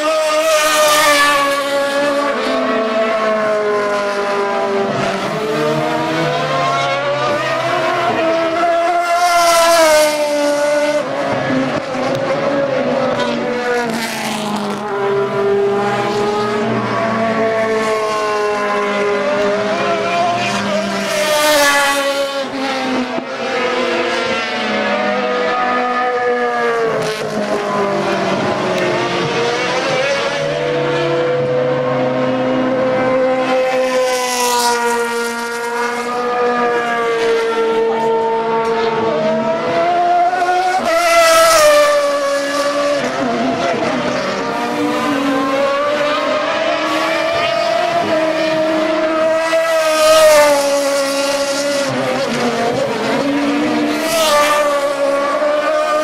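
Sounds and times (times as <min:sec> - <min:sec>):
racing cars passing at speed: 0:00.0 - 0:56.0.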